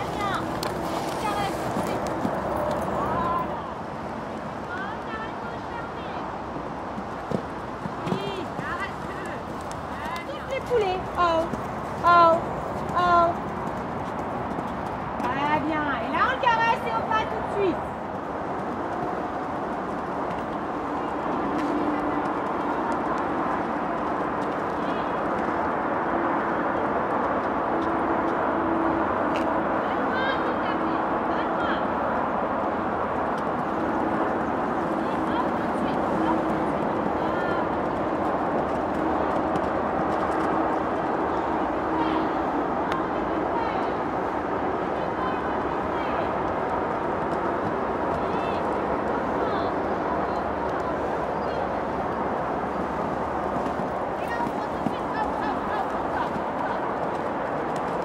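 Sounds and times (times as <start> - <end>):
steady background noise: 0.0 - 58.0.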